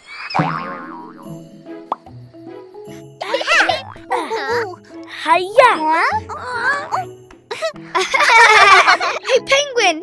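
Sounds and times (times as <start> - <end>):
springy boing effect: 0.3 - 2.1.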